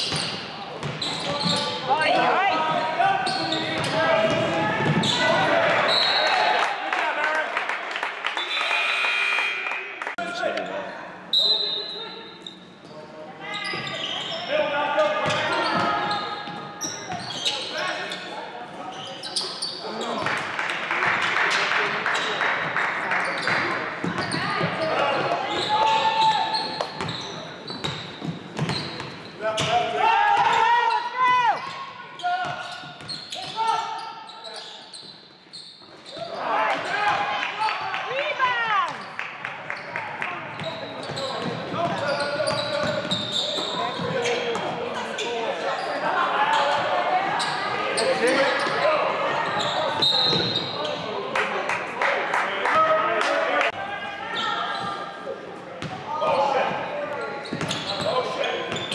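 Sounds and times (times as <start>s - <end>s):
sneakers squeaking: 0.0s - 6.5s, 10.6s - 20.3s, 21.6s - 22.5s, 23.2s - 37.2s, 38.2s - 51.2s, 54.3s - 58.9s.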